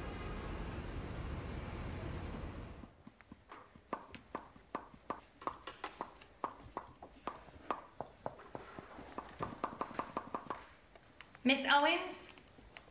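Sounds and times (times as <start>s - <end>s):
street traffic noise: 0.0s - 4.8s
heels tapping on wooden floor: 2.9s - 10.7s.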